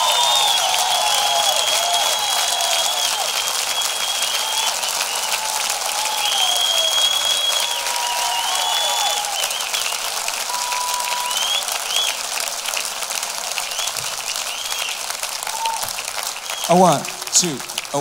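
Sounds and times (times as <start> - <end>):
shrill whistles: 0.0 - 12.2, 13.6 - 16.8
audience applauding: 0.0 - 18.0.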